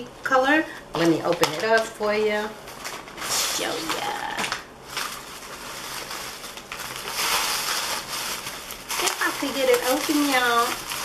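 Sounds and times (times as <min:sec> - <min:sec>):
packaging crinkling: 0:01.0 - 0:11.0.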